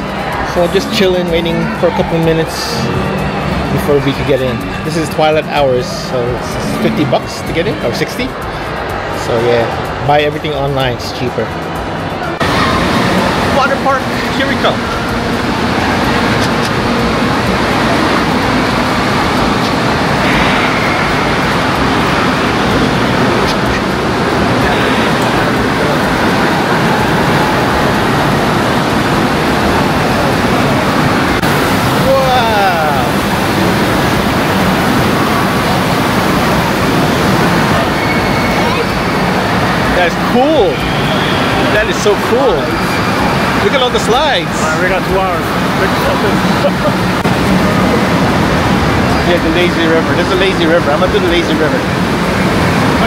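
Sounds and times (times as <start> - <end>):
chatter of many people: 0.0 - 53.0
crowd voices: 0.0 - 53.0
rushing water: 0.0 - 53.0.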